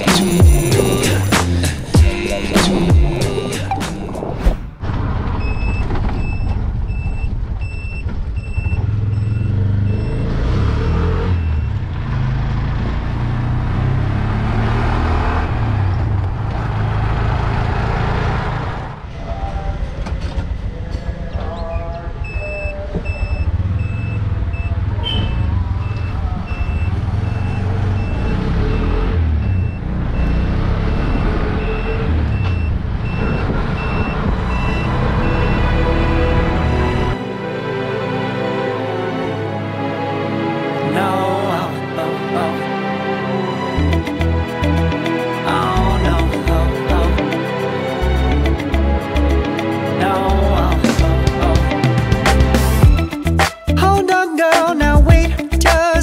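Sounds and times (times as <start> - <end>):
auto-rickshaw engine running: 4.8 - 37.2
electronic beeper: 22.2 - 35.8.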